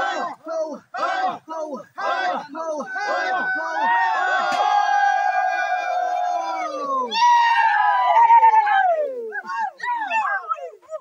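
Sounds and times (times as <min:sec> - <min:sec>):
group of people shouting: 0:00.0 - 0:10.8.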